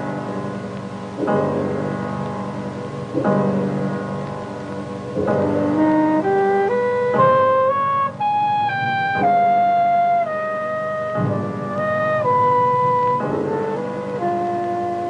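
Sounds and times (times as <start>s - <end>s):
low sustained chords: 0.0s - 15.0s
wind instrument melody: 5.2s - 15.0s.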